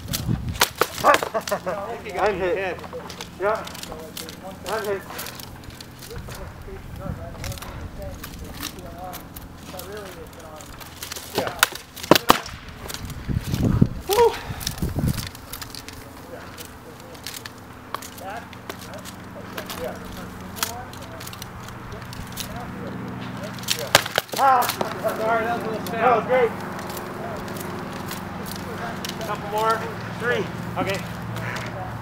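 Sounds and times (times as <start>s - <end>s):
faint voices: 1.0s - 32.0s.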